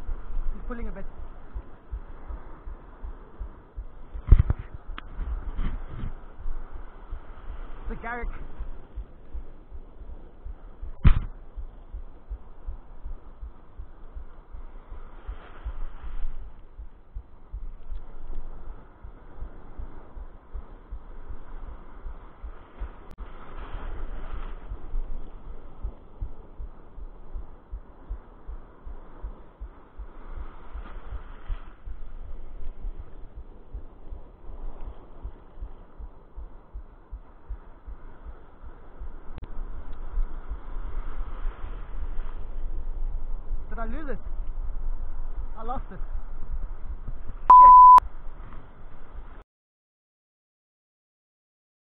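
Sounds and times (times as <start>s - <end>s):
surf breaking: 0.0s - 44.6s
wind and handling thumps on microphone: 0.0s - 47.5s, 48.1s - 49.4s
person speaking: 0.4s - 1.2s, 7.8s - 8.5s
censor bleep: 47.5s - 48.0s.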